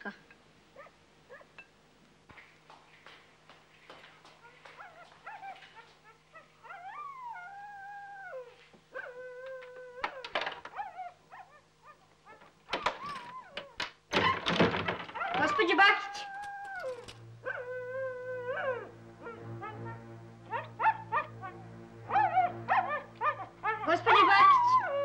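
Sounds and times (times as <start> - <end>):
dog whining and howling: 4.6 - 25.0.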